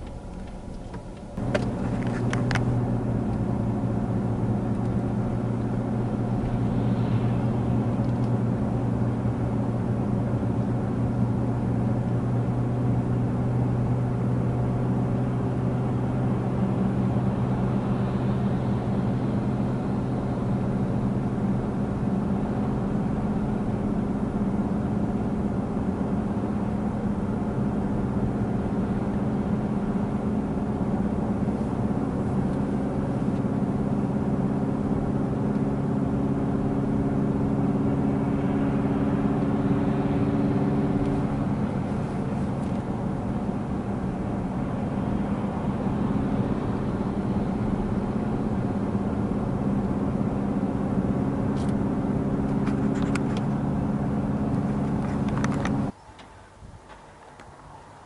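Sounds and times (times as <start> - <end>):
car engine and road noise: 0.0 - 58.0.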